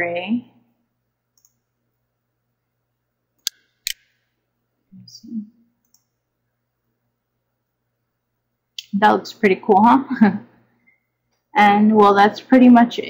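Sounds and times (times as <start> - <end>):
computer mouse clicks: 1.3 - 1.6, 5.8 - 6.2.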